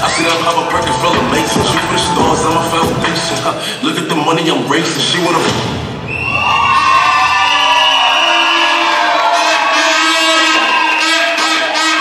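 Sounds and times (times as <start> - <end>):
audience cheering and screaming: 0.0 - 3.6, 6.0 - 12.0
music: 0.0 - 4.0.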